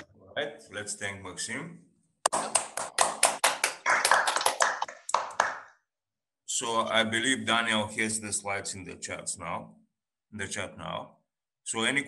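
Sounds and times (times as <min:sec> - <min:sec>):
quick irregular hand claps: 0:02.2 - 0:05.8.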